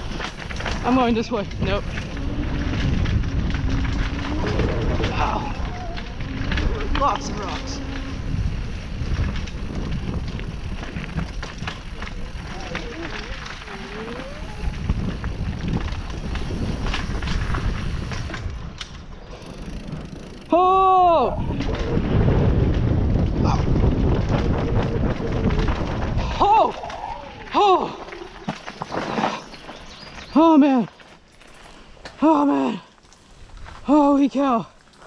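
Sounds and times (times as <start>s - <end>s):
wind on microphone: 0.0s - 30.3s
bike rattling: 0.0s - 35.0s
bike tyres crunching over gravel: 0.0s - 35.0s
rider exclaiming oh: 4.1s - 8.0s, 12.1s - 15.2s, 20.4s - 21.7s, 26.2s - 28.3s.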